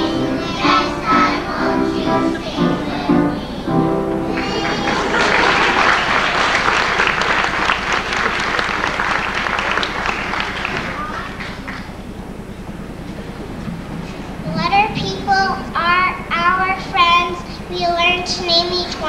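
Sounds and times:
children's song: 0:00.0 - 0:07.5, 0:14.4 - 0:19.0
audience applauding: 0:04.2 - 0:12.0.

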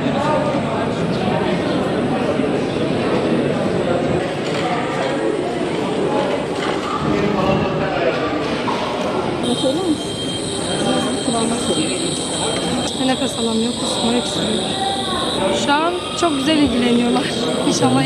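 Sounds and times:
chatter of many people: 0:00.0 - 0:18.0
high-pitched whine: 0:09.4 - 0:18.0.

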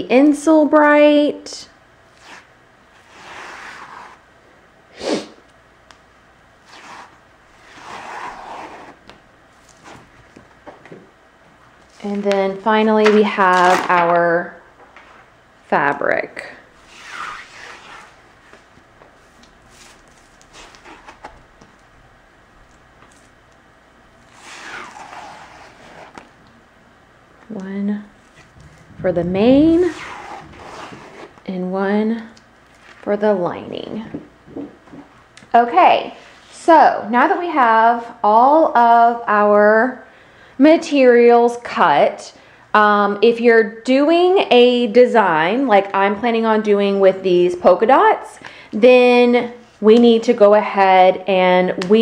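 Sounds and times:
fabric peeling off sticky mat: 0:06.6 - 0:10.4, 0:16.8 - 0:21.9, 0:24.2 - 0:26.4
batting peeled off sticky mat: 0:16.8 - 0:21.9.

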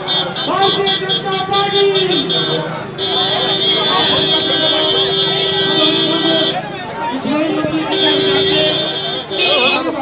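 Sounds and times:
crowd chatter: 0:00.0 - 0:10.0
vehicle horn blast: 0:02.1 - 0:06.6, 0:07.8 - 0:10.0.

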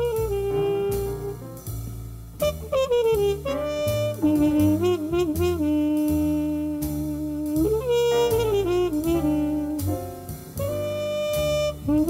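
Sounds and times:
light drums: 0:00.0 - 0:12.0
piano: 0:00.0 - 0:12.0
plucked double bass: 0:00.0 - 0:12.0
trumpet melody with vibrato: 0:02.7 - 0:06.1, 0:07.8 - 0:09.8.

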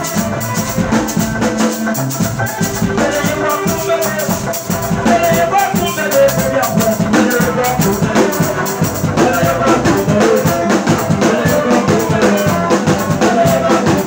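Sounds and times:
drum kit steady beat: 0:00.0 - 0:14.0
electric guitar: 0:00.0 - 0:14.0.

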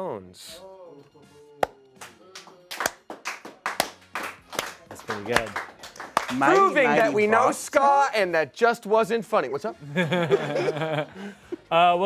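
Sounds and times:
faint music: 0:00.0 - 0:12.0
person clapping hands: 0:01.6 - 0:07.0.

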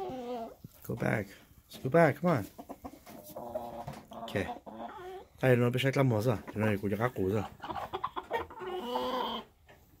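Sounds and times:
rooster clucking and calling: 0:07.6 - 0:09.6.

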